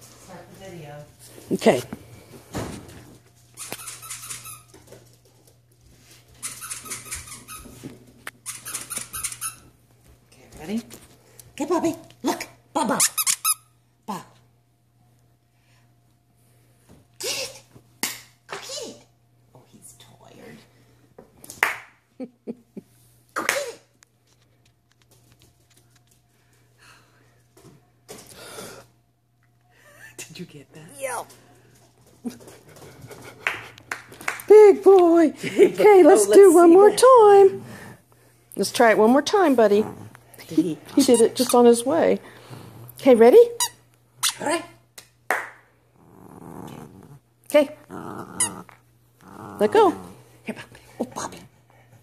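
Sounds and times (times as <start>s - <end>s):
squeaky dog toy squeezed: 3.6s - 4.7s, 6.4s - 7.7s, 8.4s - 9.7s, 12.9s - 13.7s, 41.1s - 41.6s, 43.6s - 44.5s.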